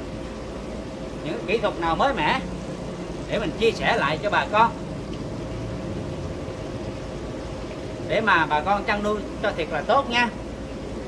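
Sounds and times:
faint even hum: 0:00.0 - 0:11.0
steady background rumble: 0:00.0 - 0:11.0.

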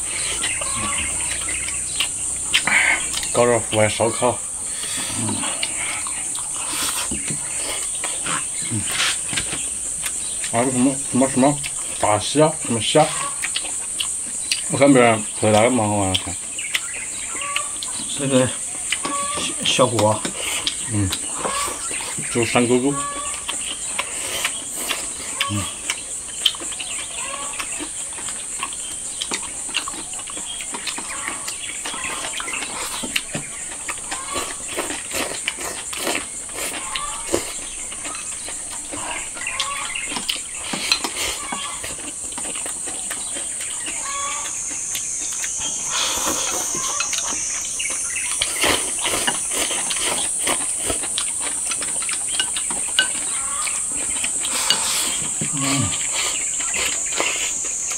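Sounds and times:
chewing: 0:00.0 - 0:57.9
insects droning: 0:00.0 - 0:57.9
chopsticks clicking on bowls: 0:48.5 - 0:55.5.

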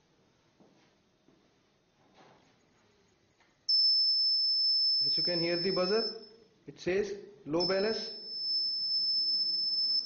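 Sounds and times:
high-pitched electronic buzzer tone: 0:03.7 - 0:06.5, 0:07.5 - 0:10.0.

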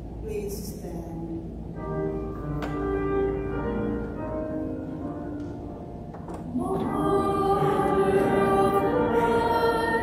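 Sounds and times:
voices singing a hymn: 0:06.3 - 0:10.0.

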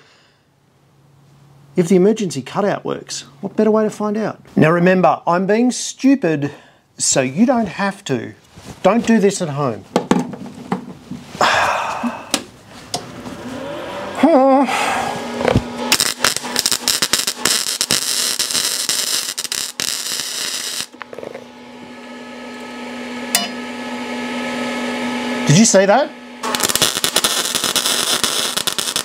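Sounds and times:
cooling fans humming: 0:05.3 - 0:29.0
arc welding crackle: 0:15.4 - 0:21.2, 0:26.4 - 0:29.0
scratches of arc striking: 0:15.4 - 0:21.4, 0:26.4 - 0:29.0.

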